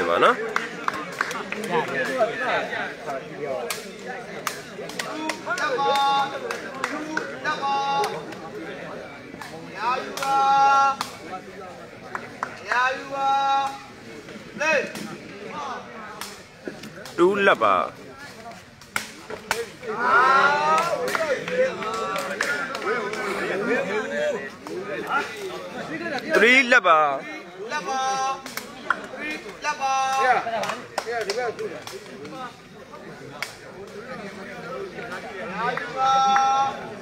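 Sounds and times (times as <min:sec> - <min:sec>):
sharp claps or knocks: 0:03.6 - 0:07.4, 0:18.8 - 0:19.7, 0:20.7 - 0:23.3, 0:28.4 - 0:32.4
people calling out: 0:03.9 - 0:09.0, 0:09.6 - 0:11.2, 0:12.6 - 0:16.4, 0:19.4 - 0:26.8, 0:27.4 - 0:30.8, 0:34.1 - 0:37.0
long drawn-out shouts: 0:07.0 - 0:08.2, 0:12.7 - 0:13.9, 0:19.8 - 0:22.2, 0:27.6 - 0:28.5, 0:35.5 - 0:37.0.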